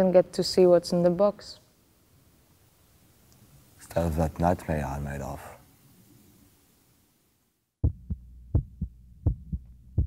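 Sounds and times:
faint low hum: 0.0s - 10.0s
heartbeat thumps: 7.8s - 10.0s.

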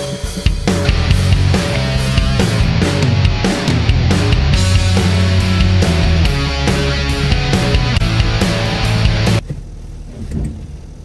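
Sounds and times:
rock music: 0.0s - 9.4s.

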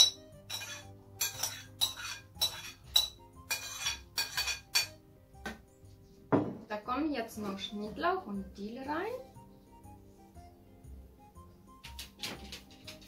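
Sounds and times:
metal spoon clinking on bowl: 0.0s - 5.0s
soft background music: 0.0s - 13.0s.

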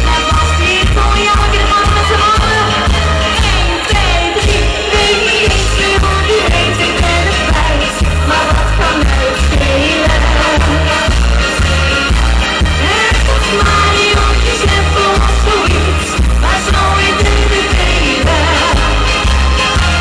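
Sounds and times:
woman singing into a microphone: 0.0s - 11.1s, 12.8s - 19.1s
pop music with heavy bass beat: 0.0s - 20.0s.

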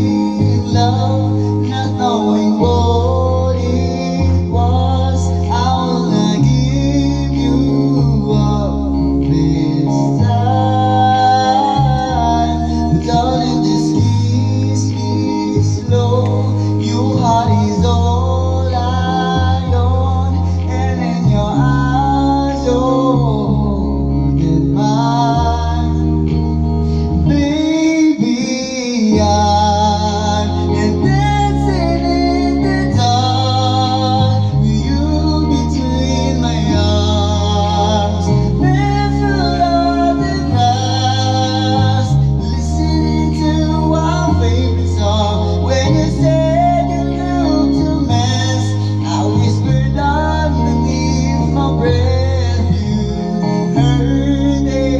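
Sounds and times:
man singing karaoke: 0.0s - 54.9s
recorded backing track: 0.0s - 54.9s.

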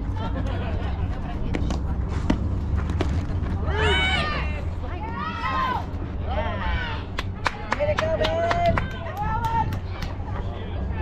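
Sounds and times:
low wind rumble on microphone: 0.0s - 11.0s
excited shouting and cheering: 3.6s - 11.0s.

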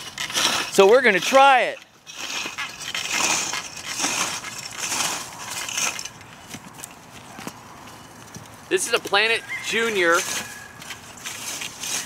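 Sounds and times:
footsteps: 0.0s - 12.0s
wheel hoe scraping dry soil: 0.0s - 12.0s.

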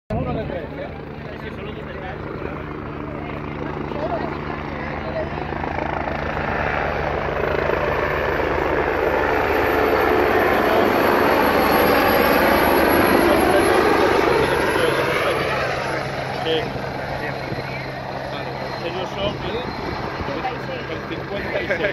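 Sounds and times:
helicopter rotor and engine: 0.1s - 21.9s
high-pitched turbine whine: 0.1s - 21.9s.

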